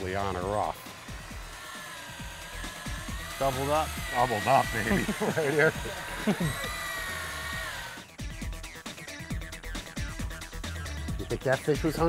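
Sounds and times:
electric fishing reel whining: 0.0s - 8.2s
music with steady beat: 0.0s - 12.0s.

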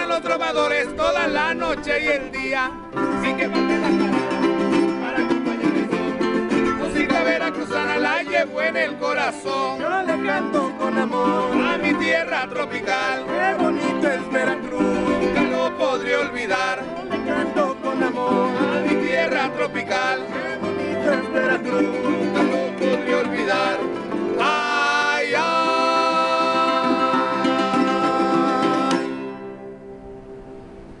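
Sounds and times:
folk guitars strummed fast: 0.0s - 29.4s.

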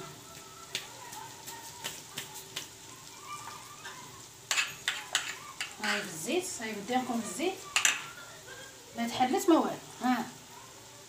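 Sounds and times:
patties sizzling in hot oil: 0.0s - 11.0s.

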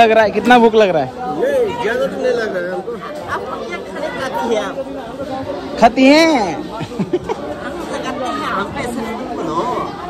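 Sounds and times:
murmur of chatter: 0.0s - 10.0s.

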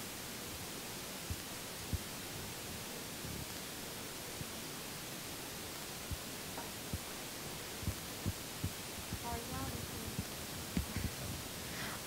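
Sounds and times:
room tone hiss: 0.0s - 12.0s
soft low thumps: 7.8s - 12.0s.

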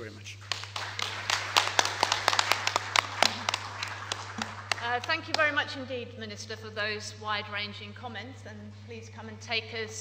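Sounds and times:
audience applauding: 0.4s - 5.6s.

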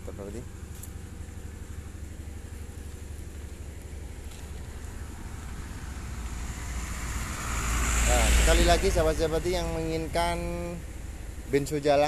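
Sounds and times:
diesel engine chugging: 8.1s - 12.0s.

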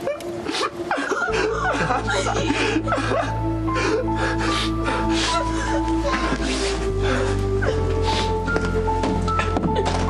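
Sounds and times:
woman crying and gasping: 0.0s - 8.5s
dramatic music with low drone: 0.0s - 10.0s.

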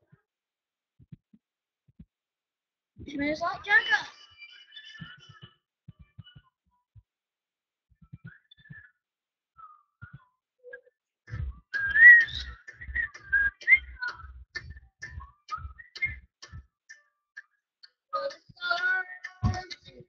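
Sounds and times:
low thumping beat: 5.0s - 7.1s, 7.9s - 8.8s, 11.3s - 17.0s, 18.2s - 20.0s
whistled tune: 9.6s - 17.0s.

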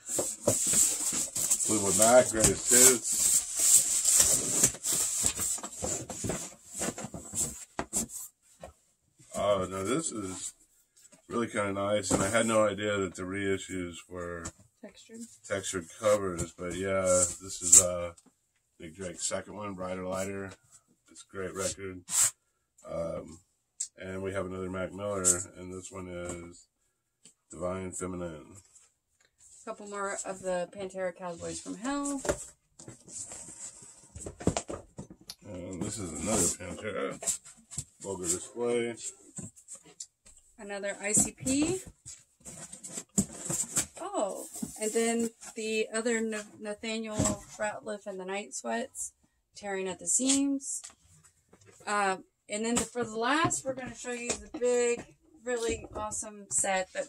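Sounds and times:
record sleeves rustling and sliding: 0.0s - 8.3s
record sleeves and cardboard rustling: 0.0s - 10.5s, 11.3s - 12.7s, 15.9s - 18.1s, 29.6s - 40.0s, 40.9s - 47.7s, 52.6s - 57.0s.

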